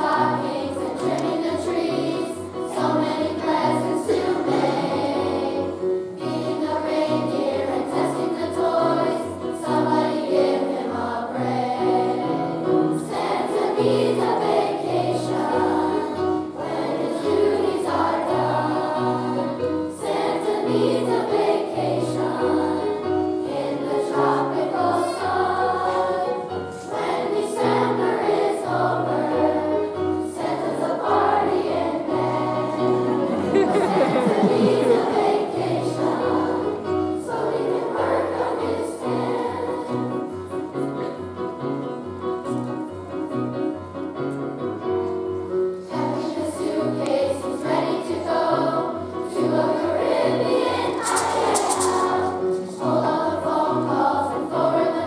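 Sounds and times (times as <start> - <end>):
children's choir singing: 0.0 - 43.1, 45.2 - 55.0
instrumental accompaniment: 49.6 - 54.3.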